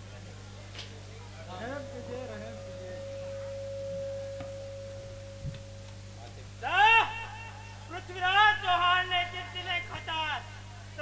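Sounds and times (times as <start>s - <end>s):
low electrical hum: 0.0s - 11.0s
steady pure tone: 1.3s - 8.2s.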